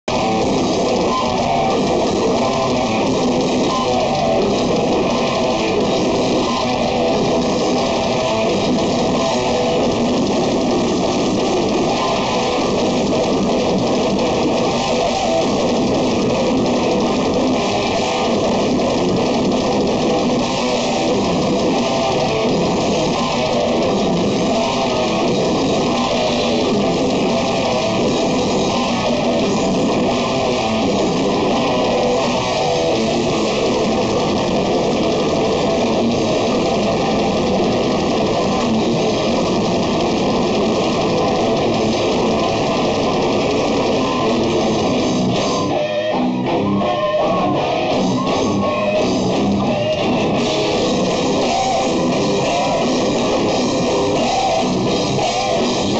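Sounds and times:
bass guitar: 0.0s - 55.9s
distorted electric guitars: 0.0s - 55.9s
metal band playing live: 0.0s - 55.9s
very fast dense drumming: 0.1s - 55.9s.

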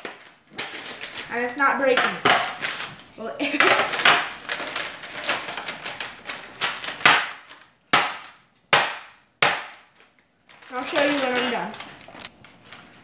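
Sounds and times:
metal mallet hammering hard candy: 7.0s - 9.8s.

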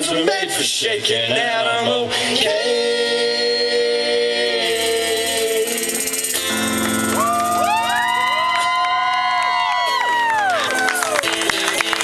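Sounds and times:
crowd whooping: 5.7s - 12.0s
scattered claps: 6.4s - 12.0s.

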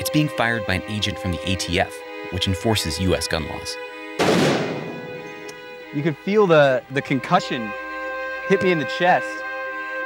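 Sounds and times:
rifle shot: 4.2s - 5.3s.

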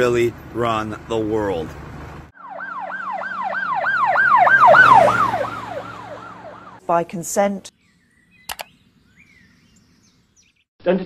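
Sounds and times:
emergency siren wailing: 2.3s - 6.8s.

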